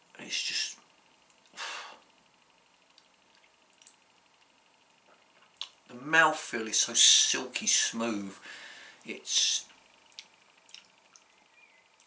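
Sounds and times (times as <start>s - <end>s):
faint small clicks: 2.9s - 4.5s, 9.7s - 11.4s.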